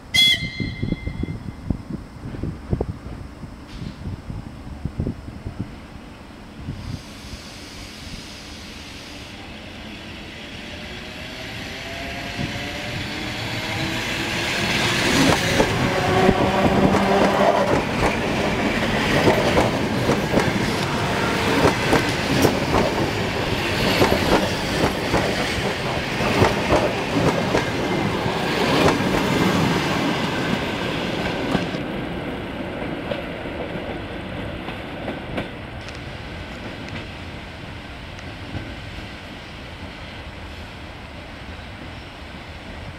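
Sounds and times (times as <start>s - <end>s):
train whine and rumble: 0.0s - 42.9s.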